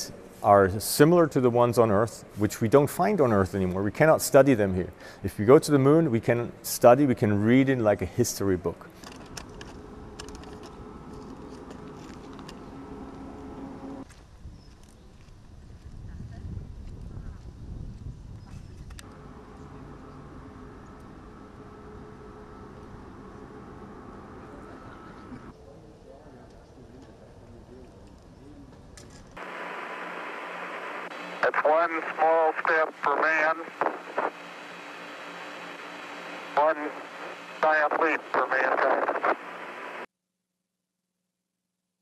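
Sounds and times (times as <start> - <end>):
steady low rumble: 8.8 - 14.0, 15.4 - 25.5
radio static hiss: 29.4 - 40.1.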